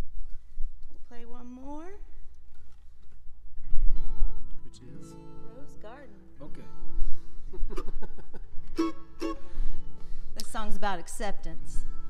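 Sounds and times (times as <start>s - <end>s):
acoustic guitar chord strummed: 4.0s - 10.3s.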